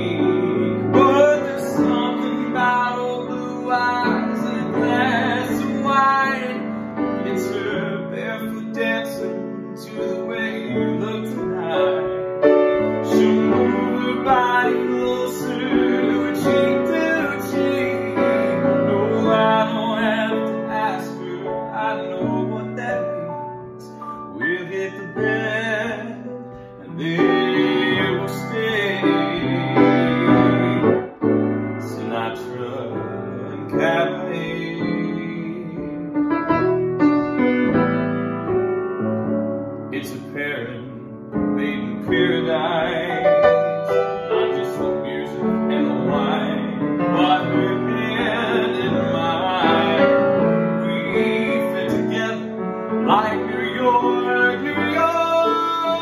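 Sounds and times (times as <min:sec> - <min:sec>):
man singing: 0:00.0 - 0:36.7, 0:39.8 - 0:56.0
grand piano jazzy chords: 0:00.0 - 0:56.0.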